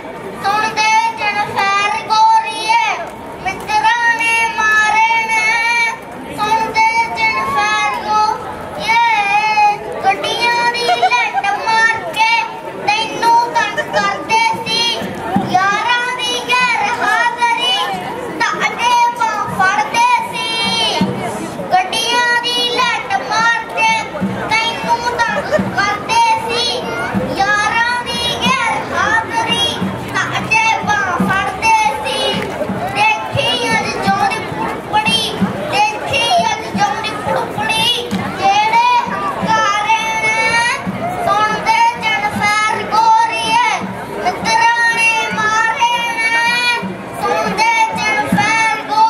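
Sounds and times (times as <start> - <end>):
boy singing into a microphone: 0.0 - 49.0.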